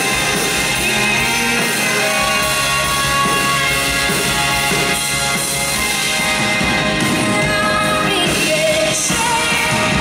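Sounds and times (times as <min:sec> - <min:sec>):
drum kit and cymbals: 0:00.0 - 0:10.0
woman singing into microphone: 0:07.2 - 0:10.0.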